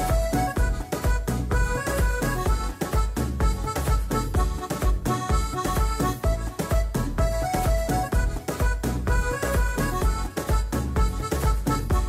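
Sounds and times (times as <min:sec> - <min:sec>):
instrumental dance music: 0:00.0 - 0:12.0.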